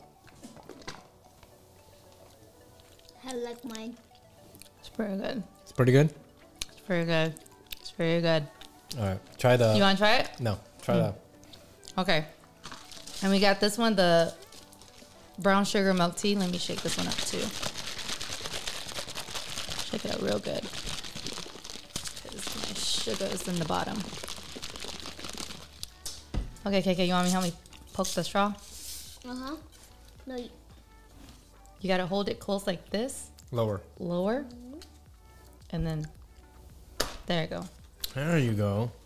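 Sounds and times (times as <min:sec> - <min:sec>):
faint background music: 0:00.0 - 0:39.0
paper wrapping crinkling: 0:12.6 - 0:13.6, 0:14.3 - 0:15.1, 0:16.3 - 0:26.3.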